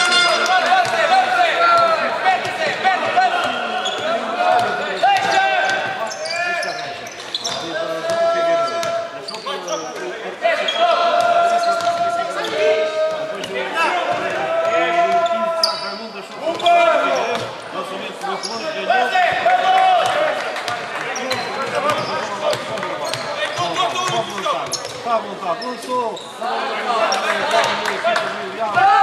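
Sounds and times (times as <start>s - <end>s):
sneakers squeaking: 0.0s - 14.4s, 15.0s - 17.6s, 18.3s - 19.4s, 20.6s - 26.4s.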